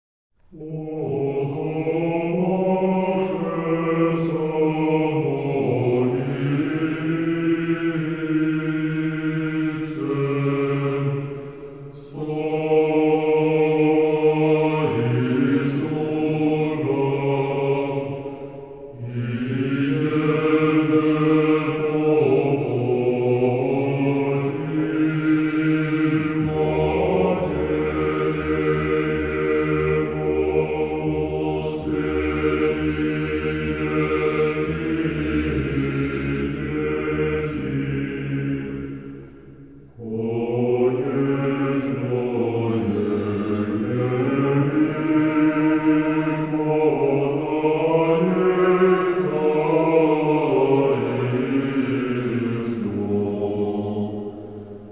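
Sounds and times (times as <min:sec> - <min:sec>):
male choir chanting: 0:00.5 - 0:54.9.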